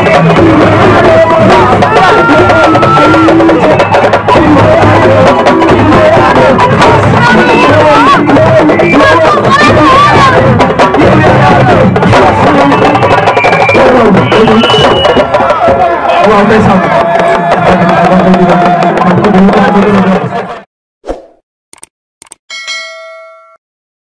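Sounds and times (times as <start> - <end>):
live drumming: 0.0 - 20.3
crowd noise and voices: 0.0 - 20.7
clicks: 21.7 - 22.4
notification bell ding: 22.5 - 23.6.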